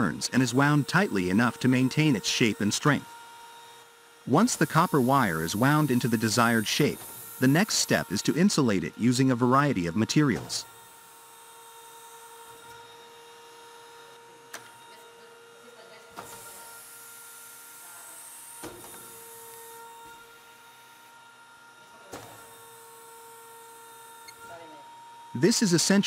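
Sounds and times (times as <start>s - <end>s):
taping machine whine: 0.0s - 26.0s.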